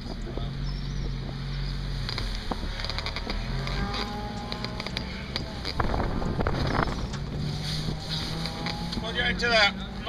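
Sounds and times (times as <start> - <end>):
car engine low drone: 0.0 - 10.0
sharp clicks and ticks: 2.0 - 6.0.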